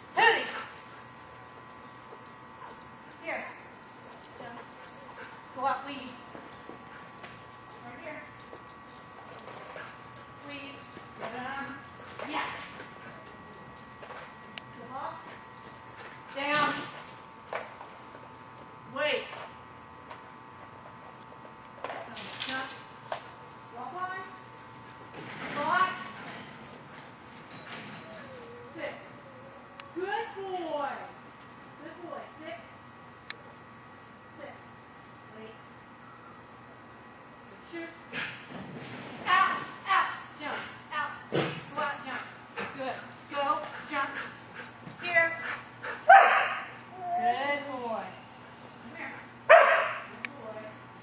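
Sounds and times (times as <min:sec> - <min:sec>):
dog barking and yipping: 0:46.1 - 0:46.8, 0:49.5 - 0:50.1.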